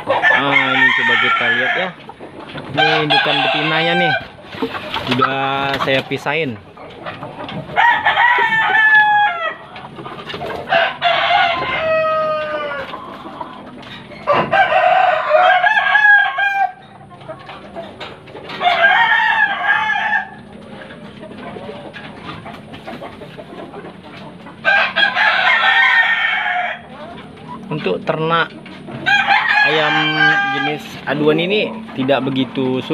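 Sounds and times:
roosters crowing: 0.0s - 22.4s, 24.5s - 28.1s, 28.7s - 32.9s.

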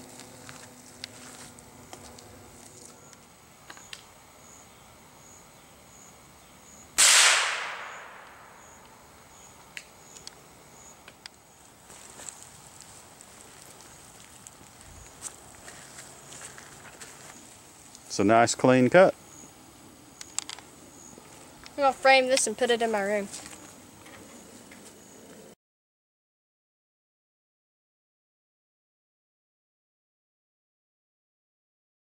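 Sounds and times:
rifle shot: 7.0s - 8.6s.

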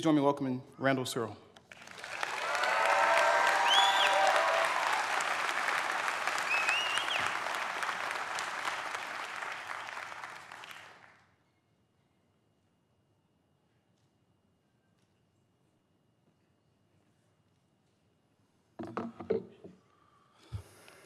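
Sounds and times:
audience applauding: 1.7s - 11.2s
people cheering and whooping: 1.9s - 10.8s.

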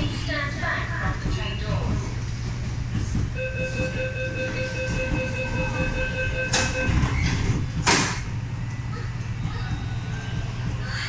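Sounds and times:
sliding doors shutting: 2.8s - 8.6s.

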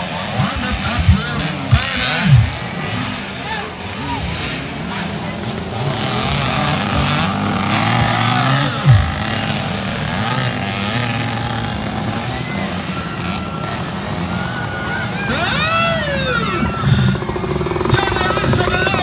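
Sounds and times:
crowd voices: 0.0s - 19.0s
dirt bike engines revving: 0.0s - 19.0s.

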